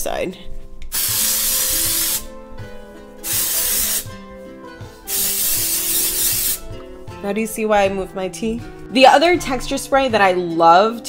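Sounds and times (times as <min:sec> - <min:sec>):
soft background music: 0:00.0 - 0:11.0
hair spray hissing: 0:00.9 - 0:02.4, 0:03.2 - 0:04.2, 0:05.0 - 0:06.7.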